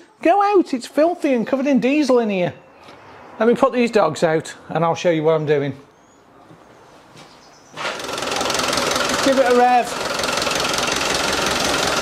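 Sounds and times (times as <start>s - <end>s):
diesel engine idling: 7.8s - 12.0s.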